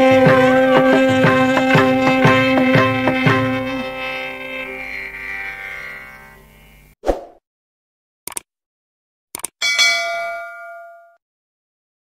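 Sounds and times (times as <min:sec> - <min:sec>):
concert music: 0:00.0 - 0:05.3
short clicks: 0:08.3 - 0:08.5, 0:09.4 - 0:09.6
bell-like ding: 0:09.6 - 0:11.2.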